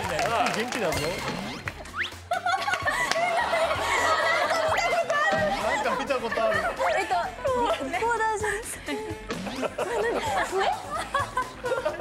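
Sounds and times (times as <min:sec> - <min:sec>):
women laughing and giggling: 0:02.2 - 0:12.0.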